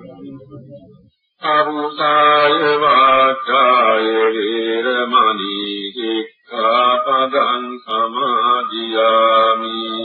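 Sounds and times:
man chanting held notes: 6.6 - 10.0.

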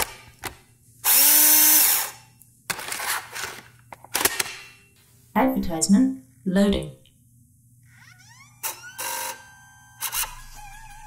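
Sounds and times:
electronic rising chirps: 7.9 - 11.0
wavering electronic tone: 7.9 - 11.0.

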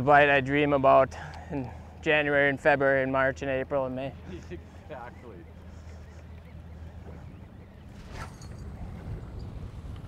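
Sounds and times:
wind: 0.0 - 10.0.

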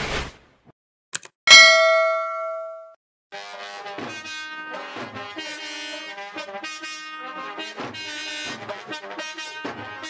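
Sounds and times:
bright bell ding: 1.5 - 3.0.

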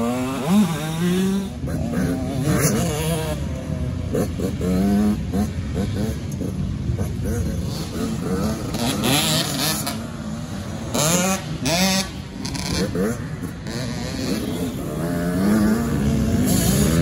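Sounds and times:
dirt bike engine revving: 0.0 - 17.0.

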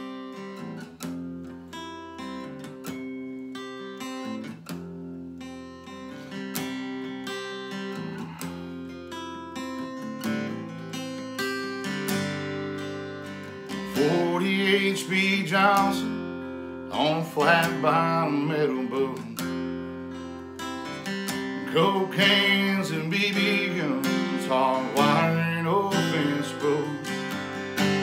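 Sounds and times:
acoustic guitar picking chords: 0.0 - 28.0.

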